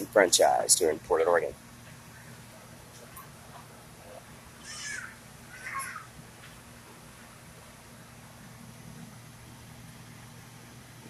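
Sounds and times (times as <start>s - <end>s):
low hum inside a tram: 1.6s - 11.0s.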